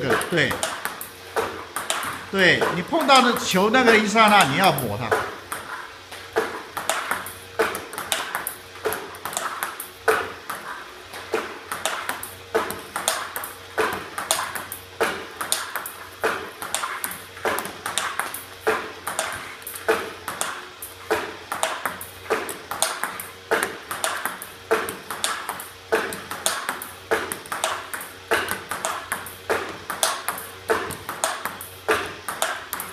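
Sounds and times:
table tennis balls clicking: 0:00.0 - 0:32.9.

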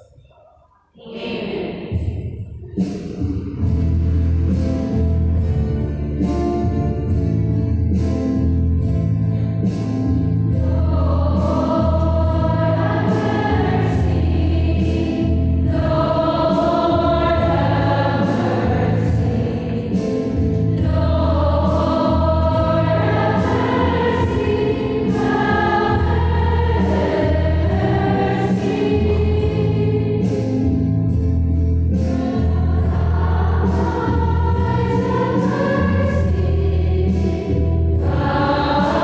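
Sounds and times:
choir singing a hymn: 0:01.0 - 0:02.4, 0:10.3 - 0:39.0.

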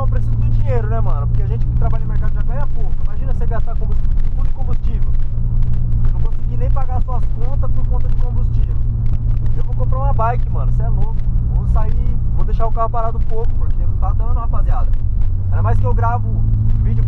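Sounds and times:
man talking: 0:00.0 - 0:05.2, 0:06.1 - 0:08.8, 0:09.5 - 0:17.0
car engine and road noise: 0:00.0 - 0:17.0.

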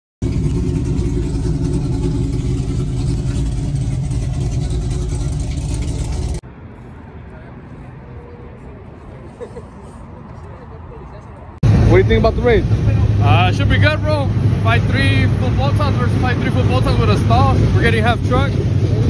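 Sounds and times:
loud car engine running: 0:00.2 - 0:06.4, 0:11.6 - 0:19.0.

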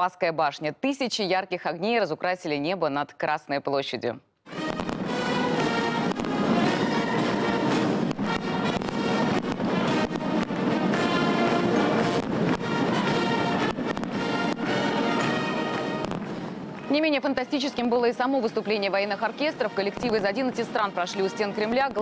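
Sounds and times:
firework bangs and crackles: 0:04.5 - 0:17.5
brass orchestral music: 0:04.5 - 0:22.0.

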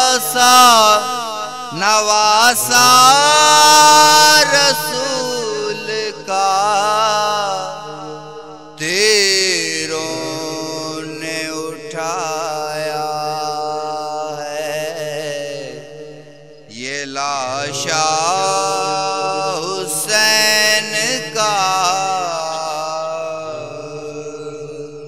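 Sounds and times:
man chanting a lament: 0:00.0 - 0:25.0
low drone: 0:20.7 - 0:25.0.

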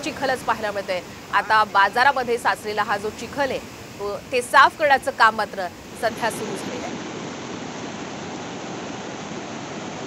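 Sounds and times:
floodwater rushing: 0:00.0 - 0:10.0.

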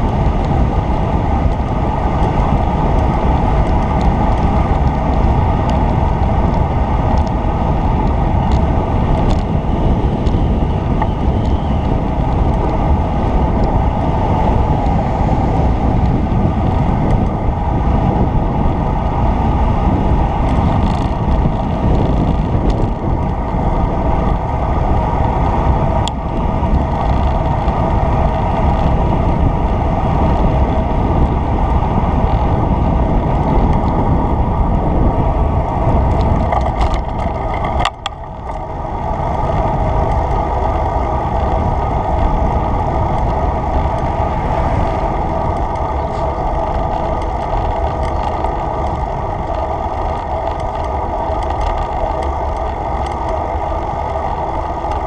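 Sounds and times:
wind rush on camera microphone: 0:00.0 - 0:55.0.

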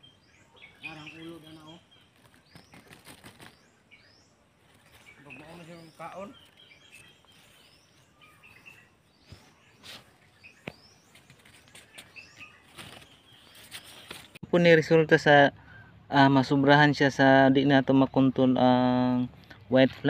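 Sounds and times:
small birds chirping: 0:00.0 - 0:20.0.

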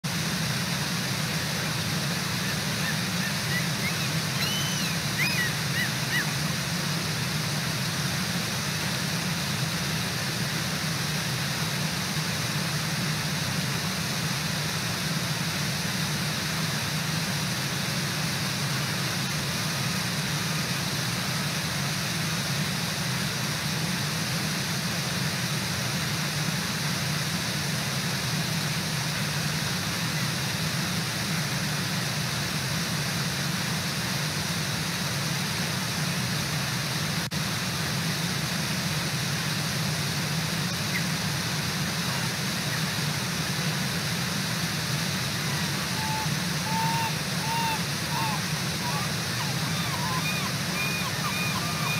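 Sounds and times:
waterfall rushing: 0:00.1 - 0:15.7, 0:34.9 - 0:51.9.

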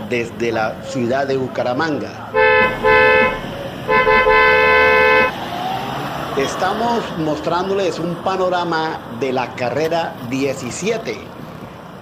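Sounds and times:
street traffic noise: 0:00.0 - 0:12.0
two-note vehicle horn honking: 0:02.4 - 0:05.3.

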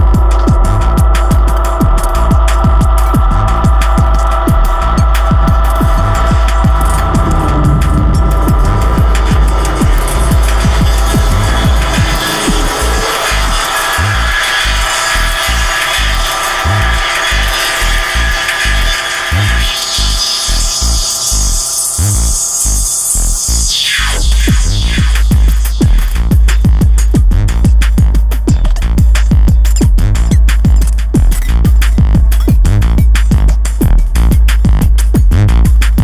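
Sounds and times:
noisy hiss-like synth texture: 0:00.0 - 0:26.8
deep synth bass: 0:00.0 - 0:36.0.

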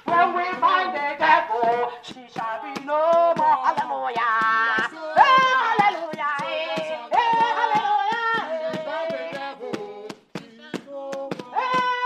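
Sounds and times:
hand clapping: 0:00.0 - 0:12.0
voices singing along: 0:00.0 - 0:12.0
woman singing through megaphone: 0:00.0 - 0:12.0.

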